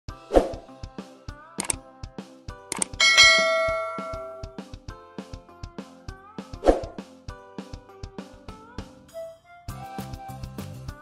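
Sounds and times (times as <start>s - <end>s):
background music with steady beat: 0.2s - 11.0s
quick click: 2.7s - 3.0s
notification bell ding: 2.8s - 4.6s.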